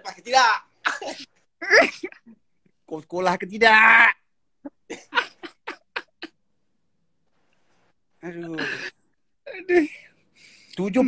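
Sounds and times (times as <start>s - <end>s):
man laughing hard: 4.9s - 6.3s.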